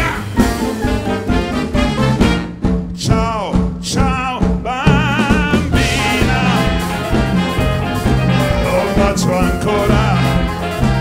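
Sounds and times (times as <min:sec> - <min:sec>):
live band playing swing: 0:00.0 - 0:11.0.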